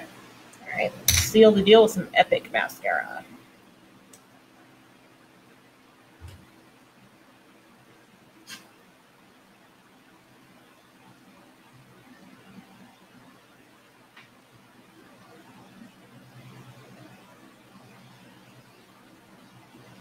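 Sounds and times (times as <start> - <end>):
faint steady hum: 0.0 - 20.0
sharp click: 1.0 - 1.4.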